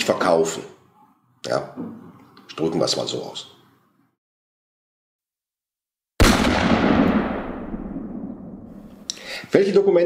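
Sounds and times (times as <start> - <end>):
loud echoing bang: 6.2 - 9.1.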